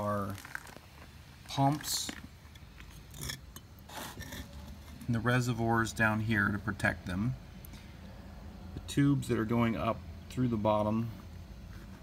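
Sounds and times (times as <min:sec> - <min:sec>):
bricks scraping and knocking: 0:02.9 - 0:05.0.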